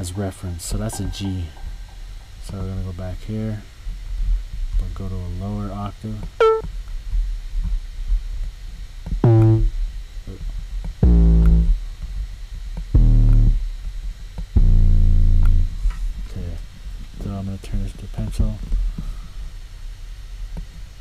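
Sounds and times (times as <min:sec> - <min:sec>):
deep bass notes: 0:06.4 - 0:06.7, 0:09.1 - 0:09.8, 0:11.0 - 0:11.8, 0:12.8 - 0:13.8, 0:14.5 - 0:15.9.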